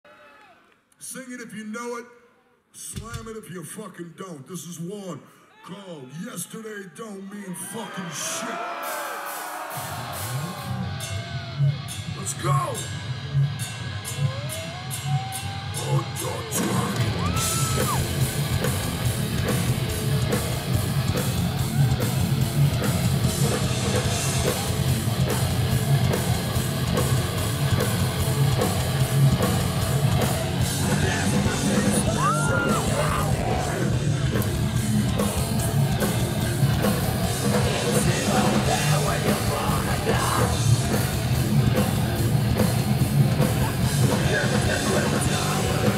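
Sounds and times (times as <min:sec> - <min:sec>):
drums: 0:02.8 - 0:03.8, 0:08.6 - 0:45.9
shouted vocals: 0:05.5 - 0:12.6, 0:14.2 - 0:18.1, 0:30.2 - 0:34.1
distorted bass and guitars: 0:09.9 - 0:45.9.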